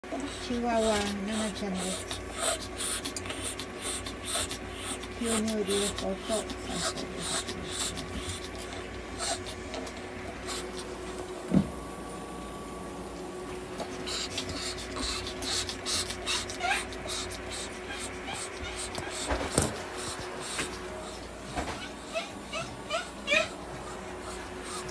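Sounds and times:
steady low hum: 0.0s - 24.9s
dog panting: 0.1s - 10.9s, 13.8s - 24.9s.

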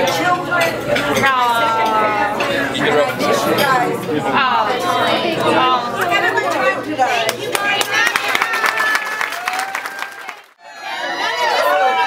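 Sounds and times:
room chatter: 0.0s - 12.0s
woman talking: 4.4s - 9.1s.

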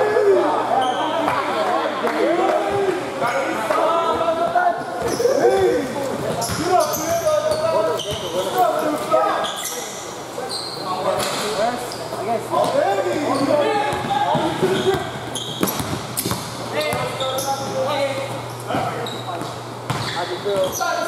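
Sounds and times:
basketball bouncing on court: 6.3s - 8.3s, 13.9s - 17.2s, 18.7s - 20.8s.

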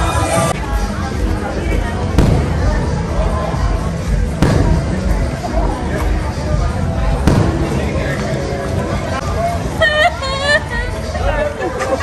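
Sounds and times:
background crowd babble: 0.0s - 12.0s.

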